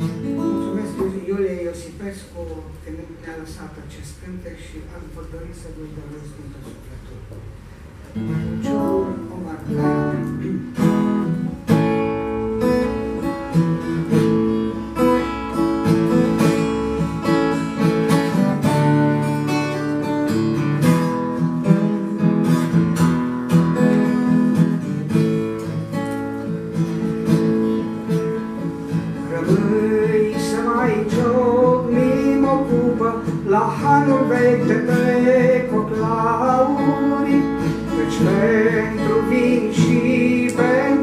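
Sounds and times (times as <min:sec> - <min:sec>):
acoustic guitar strumming: 0:00.0 - 0:02.3, 0:07.8 - 0:41.0.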